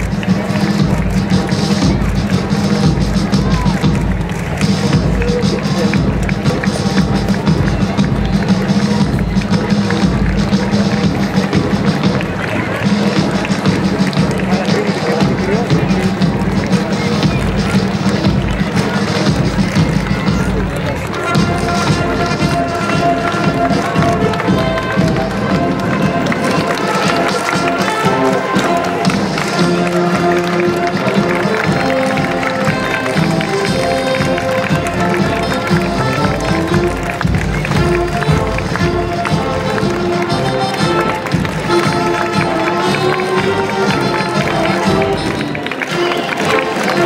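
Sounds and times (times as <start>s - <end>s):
marchers' footsteps: 0.0s - 47.0s
marching band playing: 0.0s - 47.0s
murmur of crowd: 0.0s - 47.0s.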